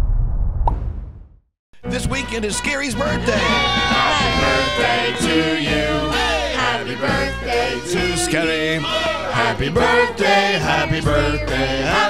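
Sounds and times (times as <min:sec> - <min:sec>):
man's voice: 0:01.8 - 0:06.2, 0:07.8 - 0:09.8.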